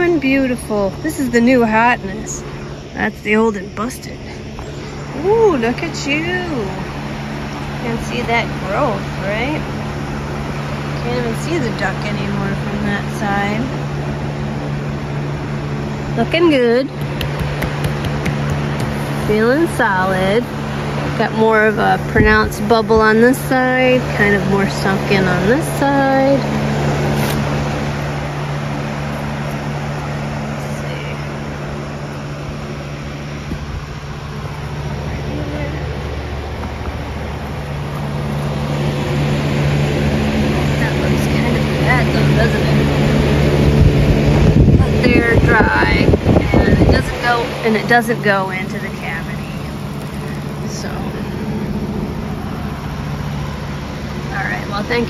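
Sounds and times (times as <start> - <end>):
electric fan motor humming: 0.0 - 55.0.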